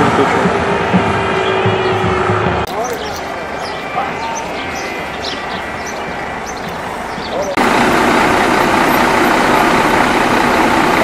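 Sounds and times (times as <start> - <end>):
bus engine rumble: 0.0 - 11.0
street noise: 0.0 - 11.0.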